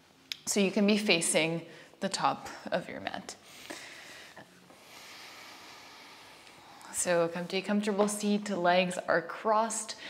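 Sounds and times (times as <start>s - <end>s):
steady soft hiss: 0.0s - 10.0s.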